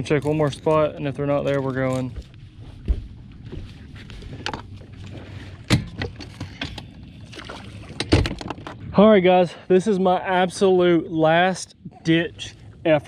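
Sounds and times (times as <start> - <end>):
footsteps on boat deck: 1.6 - 6.0.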